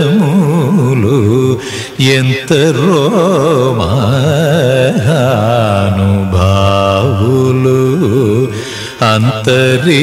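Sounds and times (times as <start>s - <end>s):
man singing long notes: 0.0s - 10.0s.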